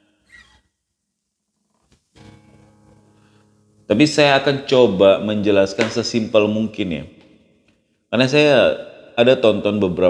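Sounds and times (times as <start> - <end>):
short breath: 3.1 - 3.6.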